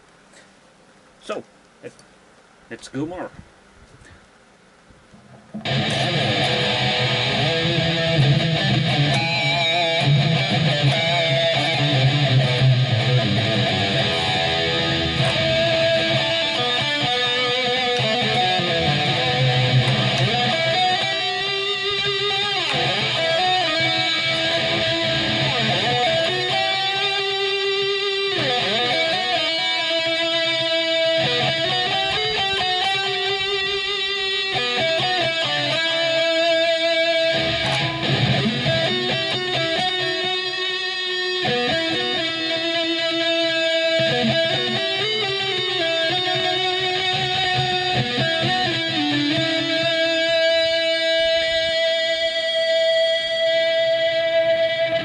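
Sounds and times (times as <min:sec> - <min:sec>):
distorted electric guitar lead: 0:05.5 - 0:55.0.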